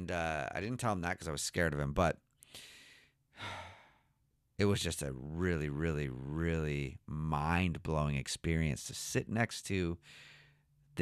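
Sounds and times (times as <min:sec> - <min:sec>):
man sighing: 0:02.6 - 0:04.1
man breathing into microphone: 0:10.0 - 0:10.6.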